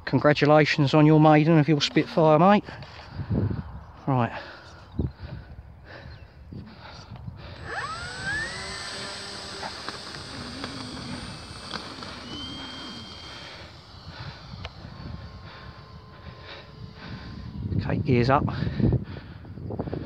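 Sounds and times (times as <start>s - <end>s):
wind rumbling on microphone: 1.8s - 20.0s
model plane motor whine: 6.5s - 20.0s.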